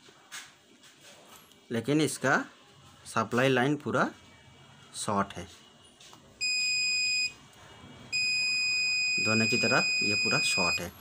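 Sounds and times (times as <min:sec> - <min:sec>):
multimeter continuity buzzer tone: 0:06.4 - 0:07.4, 0:08.1 - 0:11.0.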